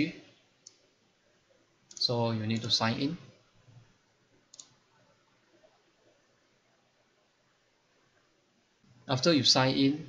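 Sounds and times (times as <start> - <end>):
computer mouse click: 0.6 - 0.9, 4.5 - 4.8.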